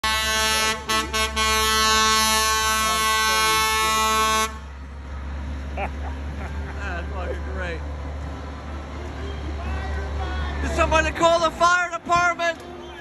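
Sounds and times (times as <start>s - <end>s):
fire engine air horn: 0.0s - 4.7s
truck engine rumbling: 0.0s - 13.0s
person laughing: 5.7s - 7.5s.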